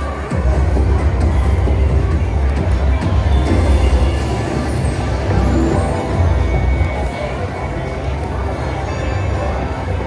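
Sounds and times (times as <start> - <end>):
slot machine game music: 3.6 - 7.6.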